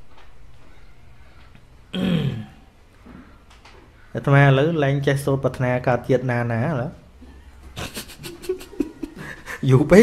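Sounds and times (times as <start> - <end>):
quiet background hum: 0.0 - 10.0
man clearing his throat: 1.9 - 2.6.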